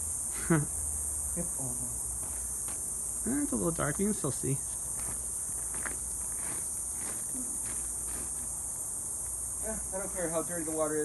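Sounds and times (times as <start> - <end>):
insects chorus: 0.0 - 11.0.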